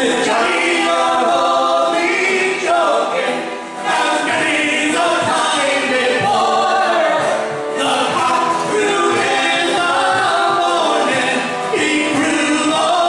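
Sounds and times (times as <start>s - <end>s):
acoustic guitar: 0.0s - 13.0s
folk band singing in harmony: 0.0s - 13.0s.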